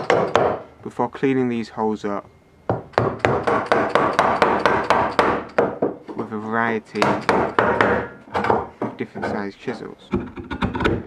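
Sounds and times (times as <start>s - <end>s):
chisel chopping wood: 0.0s - 0.6s, 2.7s - 5.9s, 7.0s - 8.7s.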